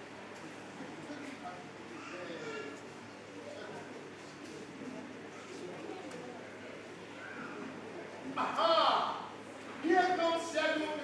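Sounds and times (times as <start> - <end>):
distant actors speaking: 0.5 - 10.6.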